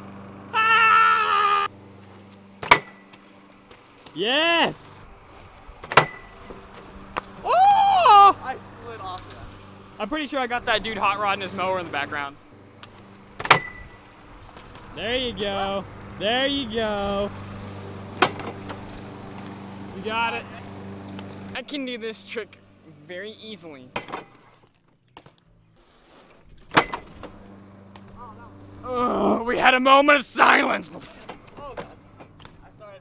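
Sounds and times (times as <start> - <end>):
lawn mower engine humming: 0.0 - 33.0
bike clanking on metal edge: 2.6 - 4.2, 5.8 - 7.3, 12.8 - 14.9, 18.1 - 19.4, 23.9 - 25.4, 26.5 - 28.4, 31.0 - 32.7.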